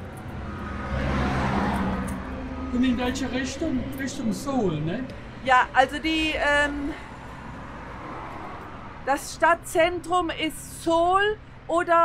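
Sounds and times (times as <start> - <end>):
passing vehicle engine and tyres: 0.0 - 11.7.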